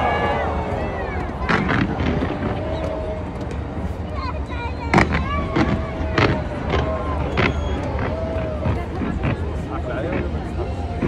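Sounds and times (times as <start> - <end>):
crowd voices: 0.0 - 11.0
fireworks bangs: 0.0 - 11.0.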